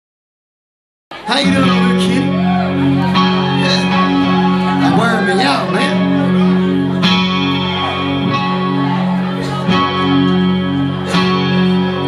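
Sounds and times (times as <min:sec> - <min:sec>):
electric guitar chords: 0:01.2 - 0:12.0.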